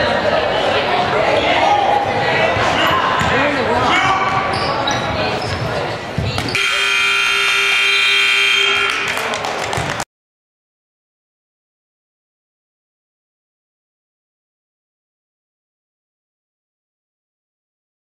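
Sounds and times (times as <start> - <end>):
voices echoing in gymnasium: 0.0 - 10.0
ball in play: 1.4 - 10.0
scoreboard buzzer: 6.6 - 9.3.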